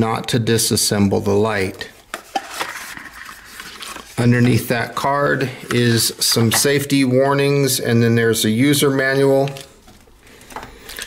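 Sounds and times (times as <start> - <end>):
cardboard and paper rustling: 1.9 - 4.7.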